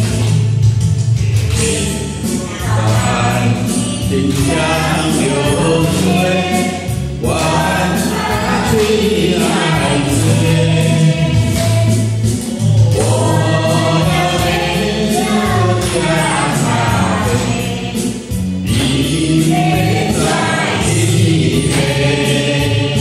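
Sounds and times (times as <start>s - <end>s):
karaoke backing track: 0.0s - 23.0s
man singing into microphone: 1.6s - 11.8s, 12.7s - 17.8s, 18.7s - 23.0s.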